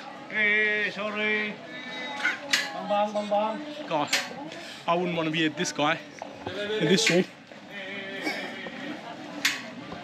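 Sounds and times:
passers-by voices: 0.0s - 10.0s.

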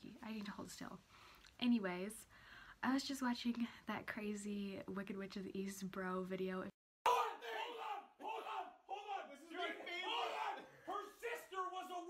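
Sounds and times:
men shouting in argument: 7.1s - 12.0s.

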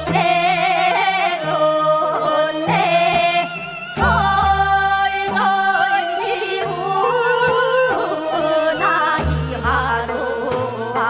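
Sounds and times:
traditional instruments: 0.0s - 11.0s
woman singing folk song: 0.0s - 11.0s.

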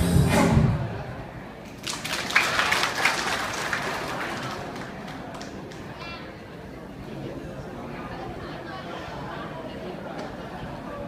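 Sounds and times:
audience applauding: 1.7s - 5.8s.

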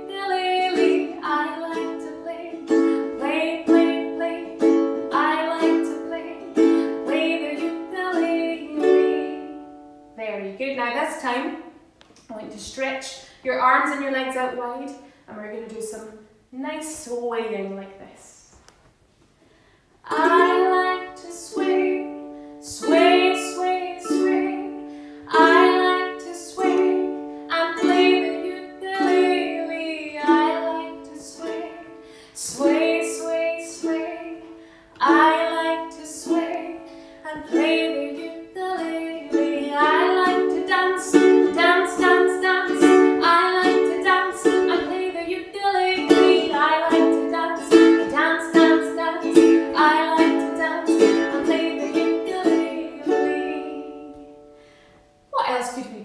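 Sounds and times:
ukulele strumming chords: 0.0s - 10.2s, 20.1s - 54.7s
woman singing: 0.0s - 11.6s, 20.0s - 54.5s, 55.4s - 56.0s.

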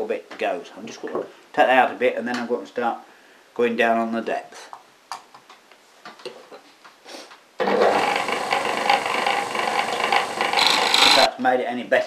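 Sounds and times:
lathe whirring and scraping: 7.6s - 11.3s.

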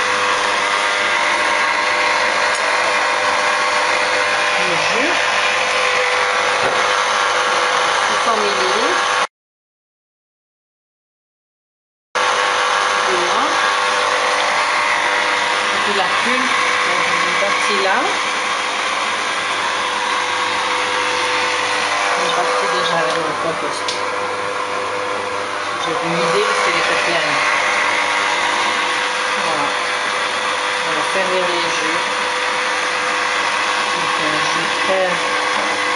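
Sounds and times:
juicer motor whirring hum: 0.0s - 9.3s, 12.2s - 35.9s.

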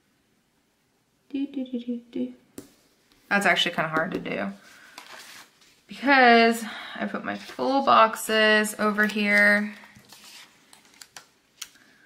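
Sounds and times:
paper rustling: 4.8s - 5.8s, 7.3s - 7.9s, 8.8s - 11.8s.

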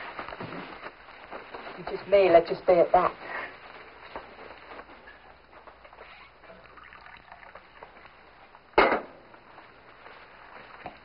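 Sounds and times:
coffee pouring: 6.4s - 8.1s.

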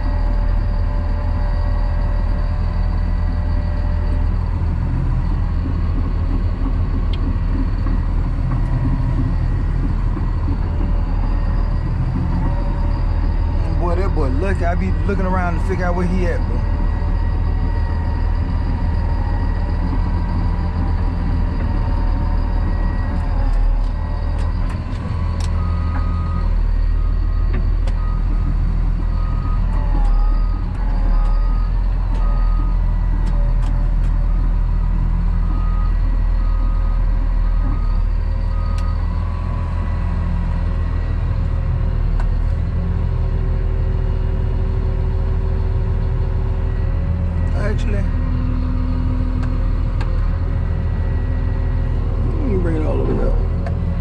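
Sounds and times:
diesel engine running: 0.0s - 54.0s
reversing alarm beeping: 0.0s - 54.0s.

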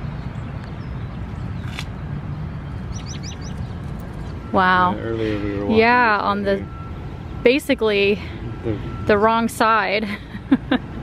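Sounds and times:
bird chirping: 0.0s - 5.6s.

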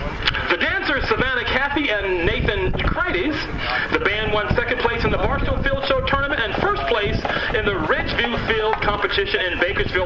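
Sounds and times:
announcer speaking over loudspeakers: 0.5s - 10.0s.

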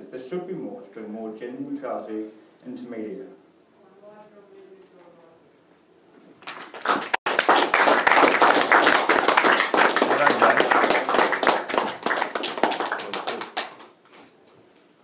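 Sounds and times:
audience clapping: 6.4s - 14.0s.

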